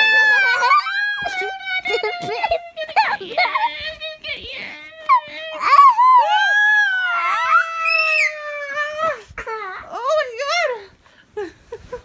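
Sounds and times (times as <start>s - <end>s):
girl's high drawn-out vocal cry: 5.0s - 9.3s.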